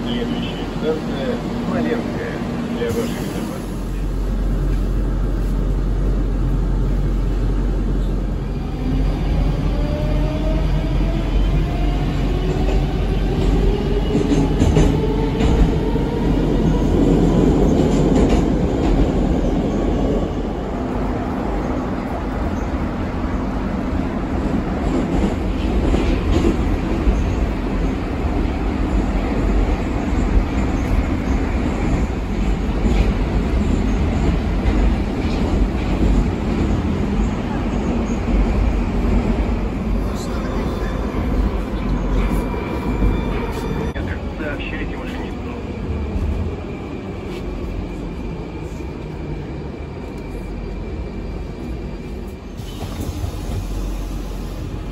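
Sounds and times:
wheels rumbling on rail: 0:00.0 - 0:54.9.

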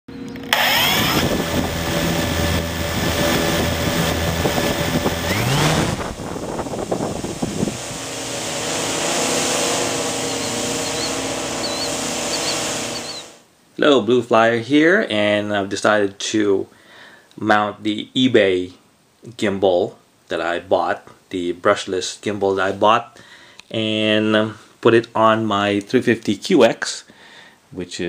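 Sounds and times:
motor-like hum: 0:00.1 - 0:13.4
rushing noise: 0:00.6 - 0:13.4.

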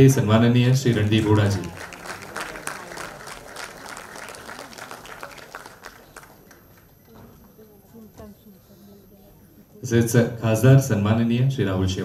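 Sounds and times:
faint voices: 0:00.0 - 0:11.5
audience applauding: 0:00.6 - 0:07.2.

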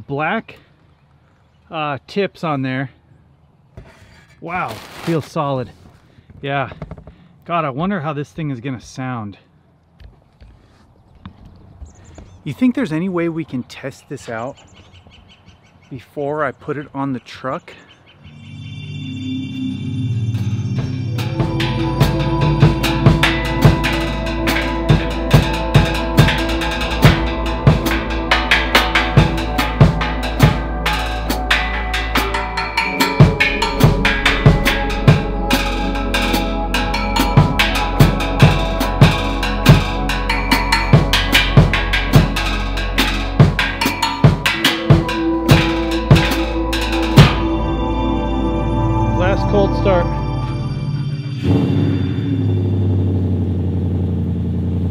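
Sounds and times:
music backing of sustained tones: 0:18.2 - 0:53.1
fast drum kit playing: 0:21.2 - 0:47.6.

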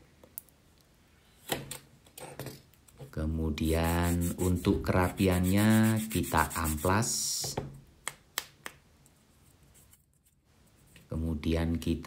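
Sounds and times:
sanding stick rubbing on wood: 0:03.6 - 0:07.3.

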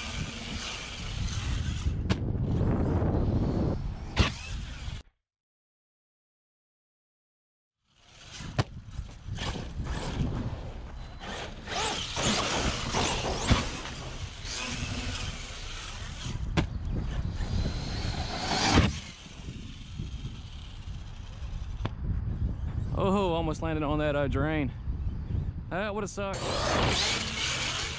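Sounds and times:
electric motor whining: 0:00.0 - 0:02.0, 0:11.2 - 0:21.8, 0:26.4 - 0:27.9
tyres scrabbling on dirt: 0:08.2 - 0:21.6
sharp knocks from landings: 0:11.7 - 0:15.4, 0:16.4 - 0:17.2.

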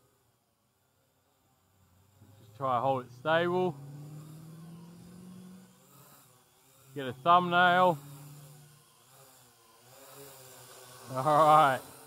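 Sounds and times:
quadcopter propellers humming: 0:00.0 - 0:12.0.

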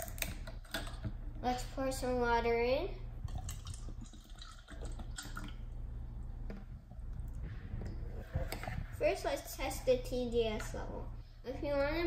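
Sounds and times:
water pouring into plastic cup: 0:03.3 - 0:05.6.

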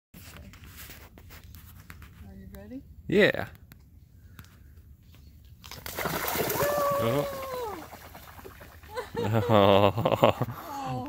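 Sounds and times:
bird splashing in water: 0:05.6 - 0:08.9.

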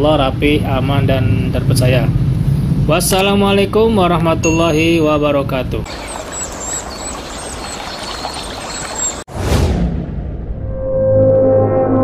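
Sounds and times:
pouring liquid rush: 0:05.9 - 0:09.2.

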